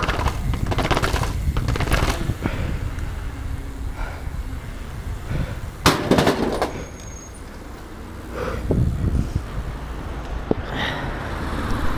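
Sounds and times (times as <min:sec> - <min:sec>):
bike landing impact: 0:00.0 - 0:02.6, 0:05.8 - 0:07.0
bike clattering rattle: 0:00.0 - 0:04.2, 0:05.2 - 0:07.8
tyres rolling over paving: 0:00.0 - 0:10.8.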